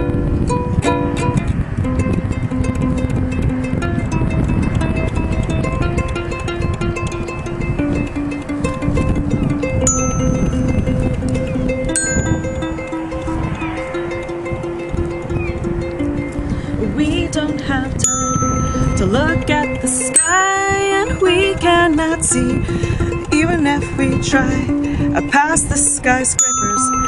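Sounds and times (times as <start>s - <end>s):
ukulele strumming: 0.0s - 27.0s
glockenspiel notes: 9.8s - 16.2s, 18.0s - 21.8s, 26.4s - 27.0s.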